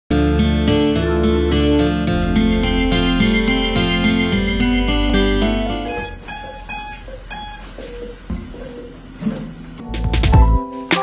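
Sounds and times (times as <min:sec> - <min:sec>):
guitar music with picked notes: 0:00.1 - 0:07.1
thin recording of scattered notes: 0:00.1 - 0:07.6.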